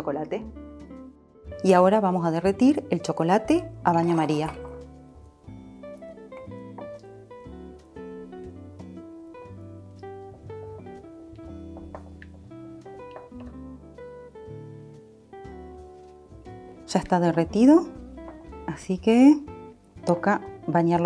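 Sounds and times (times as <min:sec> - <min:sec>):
plucked acoustic guitar: 0:02.4 - 0:21.0.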